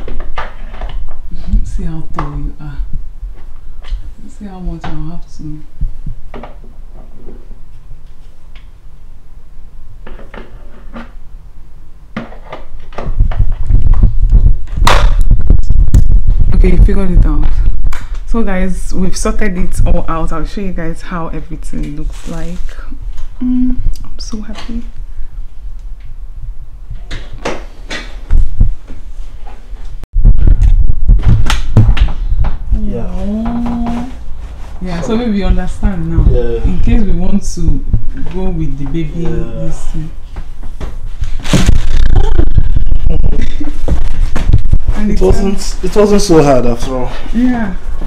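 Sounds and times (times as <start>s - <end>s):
sharp knock: 14.8s - 15.3s.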